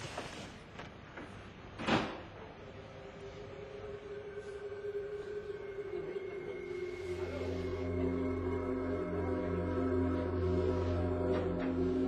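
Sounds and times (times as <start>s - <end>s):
synth drone: 2.6s - 12.0s
higher synth tone: 2.8s - 12.0s.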